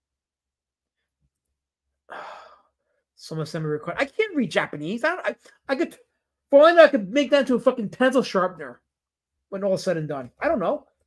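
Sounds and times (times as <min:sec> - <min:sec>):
man sighing: 0:02.1 - 0:02.7.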